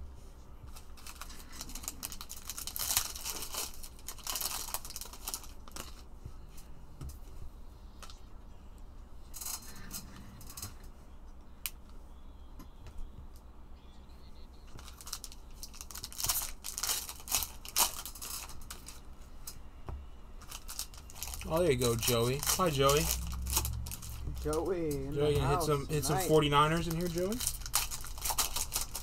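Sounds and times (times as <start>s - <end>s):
foil wrapper crinkling: 0.7s - 6.1s, 14.7s - 19.1s, 20.4s - 24.7s, 25.6s - 29.0s
cards rustling: 0.7s - 6.6s, 14.7s - 19.6s, 20.4s - 29.0s.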